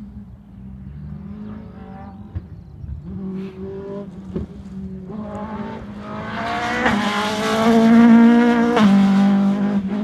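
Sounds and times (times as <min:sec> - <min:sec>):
rally car engine at high revs: 0:00.8 - 0:10.0.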